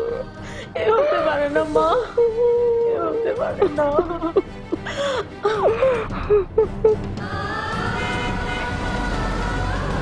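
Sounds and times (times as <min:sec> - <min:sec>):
vehicle horn blaring: 0:07.9 - 0:08.8.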